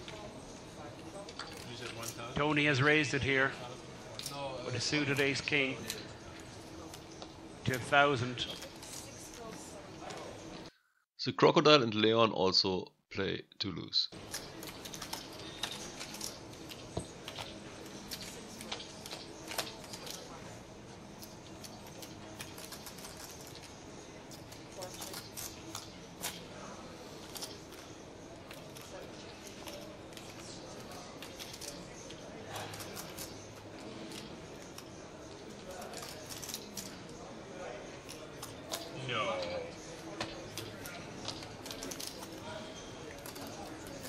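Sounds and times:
low room noise: 0.0 - 44.0
faint background voices: 14.3 - 44.0.

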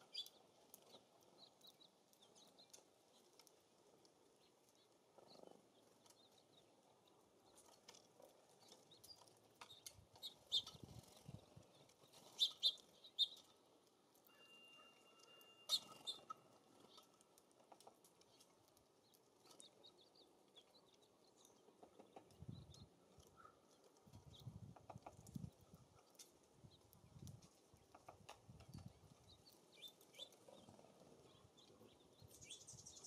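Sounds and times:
faint outdoor background: 0.0 - 33.0
songbird chip calls: 12.4 - 13.4.

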